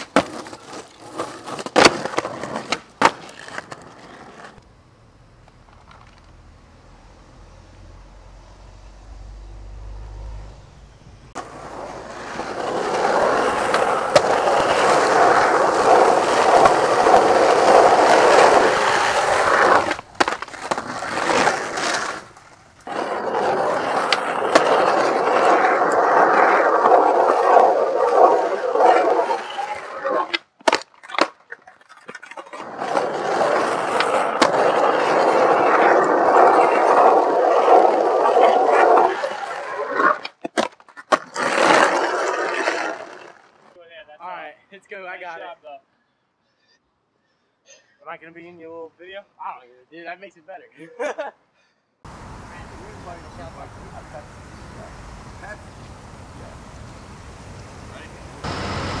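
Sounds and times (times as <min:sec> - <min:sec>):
skateboard clacks: 0:00.0 - 0:04.6, 0:11.4 - 0:39.4
skateboard wheels rolling on asphalt: 0:00.0 - 0:43.8, 0:52.1 - 0:59.0.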